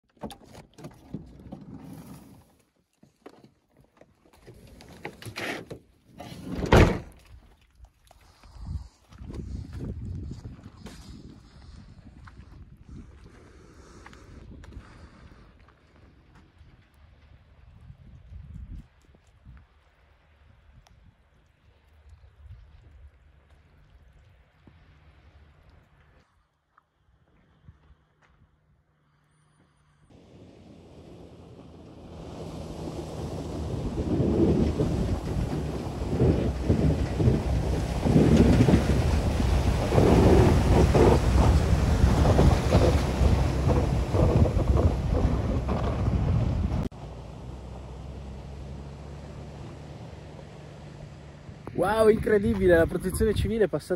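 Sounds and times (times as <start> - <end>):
heavy thunk: 6.5 - 7.1
low rumbling noise: 30.1 - 53.0.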